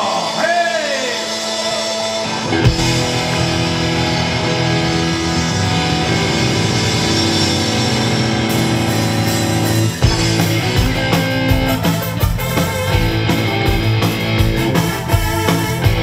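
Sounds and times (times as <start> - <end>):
electric guitar: 0.0 - 16.0
live rock band: 0.0 - 16.0.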